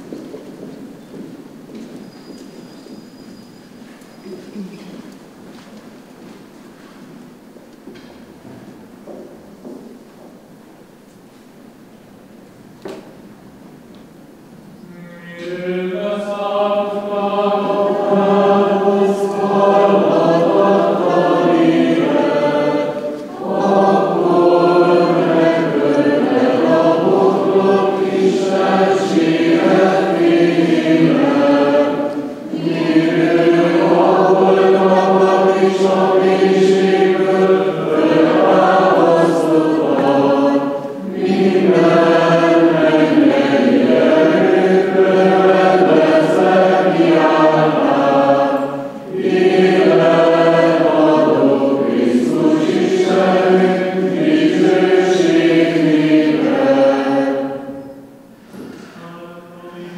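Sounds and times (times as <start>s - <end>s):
group of voices chanting: 15.3s - 57.8s.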